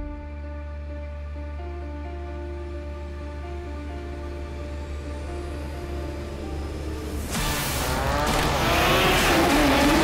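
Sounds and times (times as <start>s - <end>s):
car engine revving hard: 7.3s - 10.0s.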